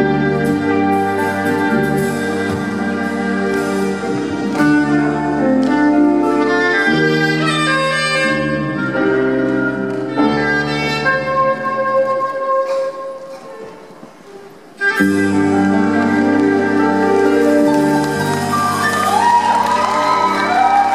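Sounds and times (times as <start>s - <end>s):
live band backing with bass: 0.0s - 20.9s
soprano saxophone melody: 0.0s - 20.9s.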